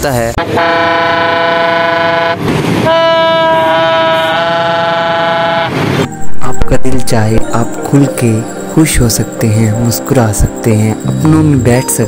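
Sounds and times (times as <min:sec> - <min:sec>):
toy trumpet long note: 0:00.6 - 0:05.8.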